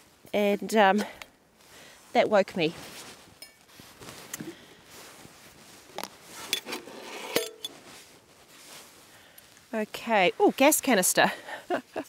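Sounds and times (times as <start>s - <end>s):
camping gear rustling: 0.0s - 12.0s.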